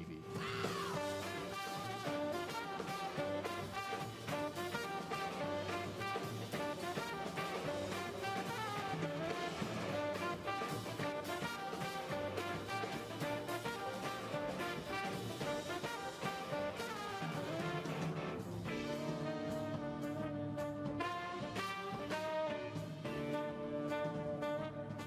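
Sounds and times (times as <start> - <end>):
drum kit beat: 0.0 - 25.0
horn section playing jazz: 0.0 - 25.0.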